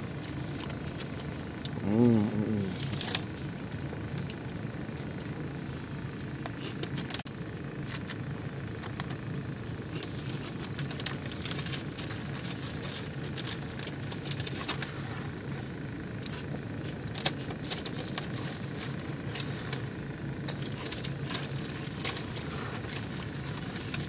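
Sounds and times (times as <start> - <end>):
low mechanical hum: 0.0 - 24.0.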